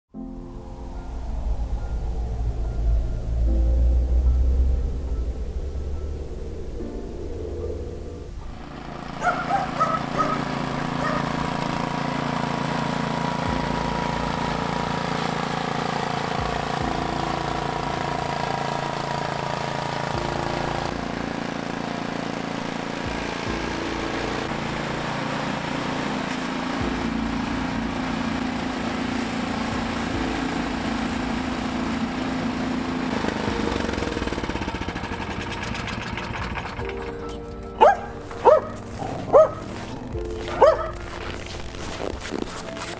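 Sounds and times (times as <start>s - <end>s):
snowblower engine running: 0.7s - 42.9s.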